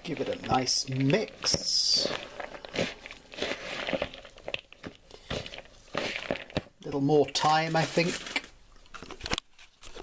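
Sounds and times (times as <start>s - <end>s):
wooden spoon stirring in a bowl: 0.0s - 8.3s.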